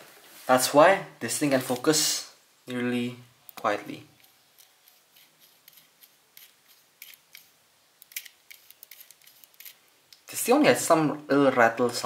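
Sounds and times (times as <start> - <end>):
lens focusing ring rattling: 4.2 - 9.8.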